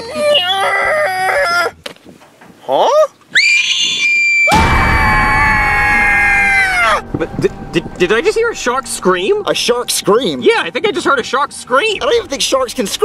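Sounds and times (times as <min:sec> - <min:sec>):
comic shark scream: 0:03.4 - 0:07.0.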